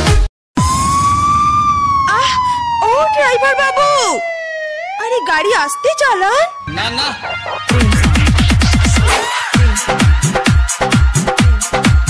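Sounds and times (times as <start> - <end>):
siren tone sliding down: 0.6 - 9.2
dance beat: 7.2 - 12.0
chopped vocal sample: 7.7 - 10.1.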